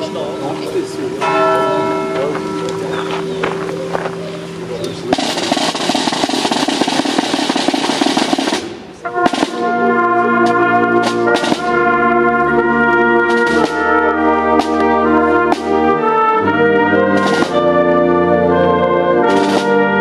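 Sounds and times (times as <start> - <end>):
brass band playing chords: 0.0 - 20.0
drum roll: 5.1 - 17.9, 19.2 - 19.9.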